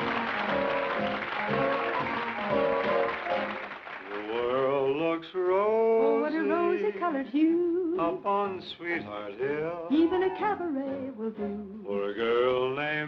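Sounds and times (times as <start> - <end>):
dance band music: 0.0 - 4.0
audience applause: 0.0 - 5.0
person singing melody: 5.6 - 13.0.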